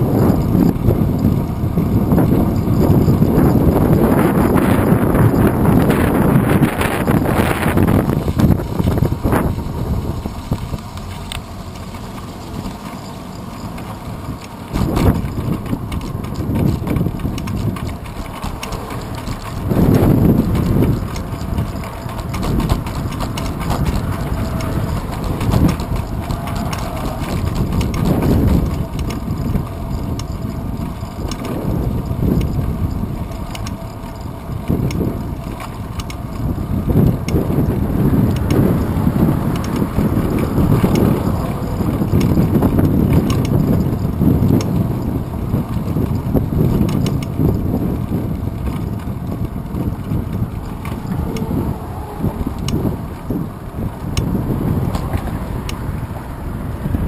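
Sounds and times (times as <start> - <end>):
road rumble: 0.0 - 57.0
wind buffeting microphone: 0.0 - 57.0
rattling clicks from mount: 10.6 - 37.6, 38.3 - 45.1, 45.7 - 47.7.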